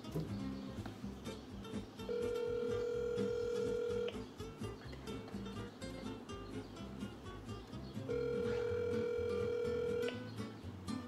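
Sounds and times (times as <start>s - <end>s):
telephone ringback tone: 2.1s - 4.2s, 8.1s - 10.2s.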